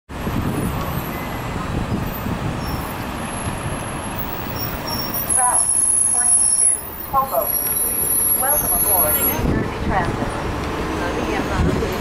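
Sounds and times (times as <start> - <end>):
bus engine and tyres rumbling: 0.1 - 12.0.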